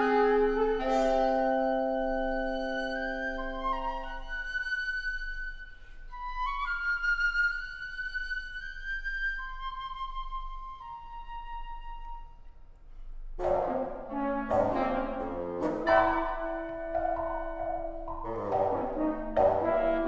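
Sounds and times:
french horn: 0:00.0 - 0:04.2, 0:13.4 - 0:17.2
piccolo playing high notes: 0:00.0 - 0:08.6.

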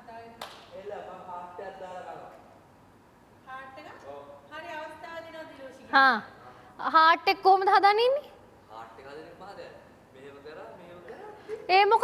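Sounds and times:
sharp click or clap: 0:00.4 - 0:00.7.

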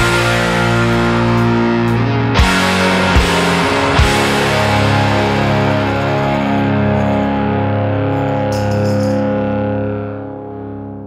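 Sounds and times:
distorted electric guitar chord: 0:00.0 - 0:11.0.

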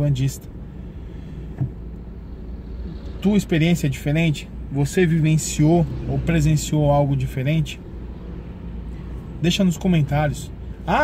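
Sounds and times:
idling car rumble from inside: 0:00.0 - 0:11.0.

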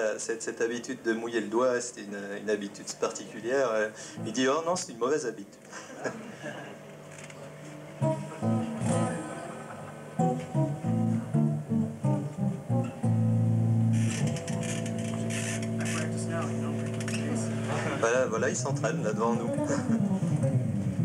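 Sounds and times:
electric bass playing: 0:04.2 - 0:04.7, 0:07.6 - 0:21.0.

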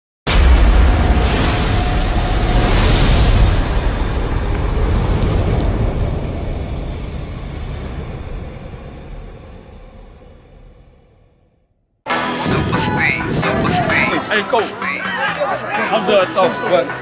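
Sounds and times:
fiery rumbling rush: 0:00.3 - 0:14.9.

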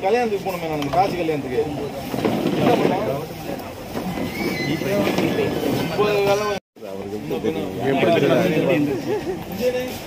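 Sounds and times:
men chattering: 0:00.0 - 0:10.0.

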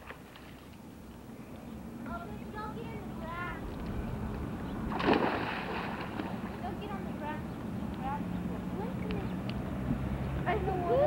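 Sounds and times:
child splashing into pool: 0:04.9 - 0:06.6
faint children's voices calling: 0:06.1 - 0:11.0.

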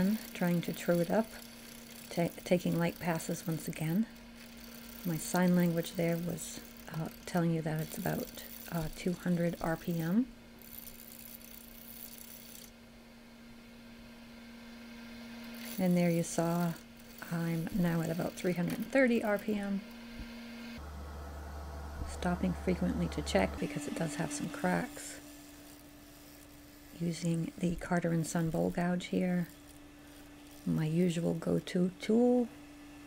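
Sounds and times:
gouge cutting wood hiss: 0:00.0 - 0:12.8, 0:14.6 - 0:31.5
wood lathe humming: 0:00.0 - 0:12.8, 0:13.4 - 0:32.9.

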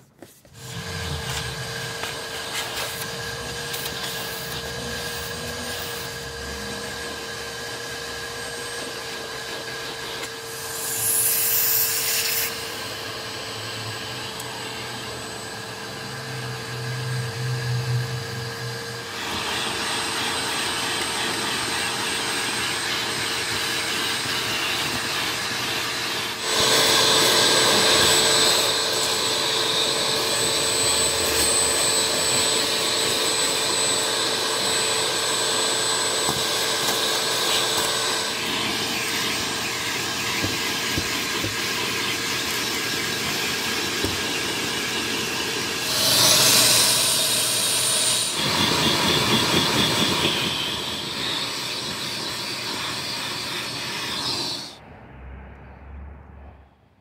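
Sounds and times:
vacuum nozzle sucking carpet: 0:00.0 - 0:54.8
wet dry vacuum running: 0:00.0 - 0:54.8.

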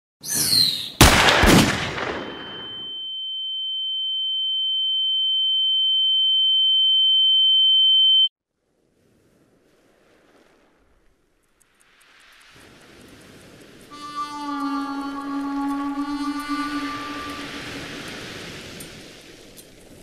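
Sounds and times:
pistol gunshot: 0:01.0 - 0:02.8
high-pitched ringing tone: 0:02.2 - 0:08.3, 0:13.9 - 0:18.4.

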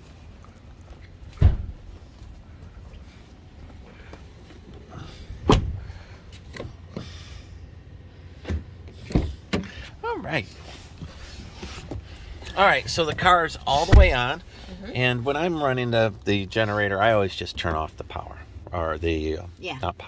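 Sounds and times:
low steady rumble: 0:00.0 - 0:20.0
truck door thumps: 0:01.4 - 0:01.9, 0:05.4 - 0:05.9, 0:13.9 - 0:14.3.

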